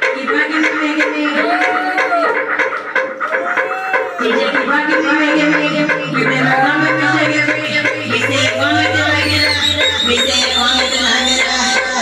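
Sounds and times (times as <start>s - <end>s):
loud electronic dance music: 0.0s - 12.0s.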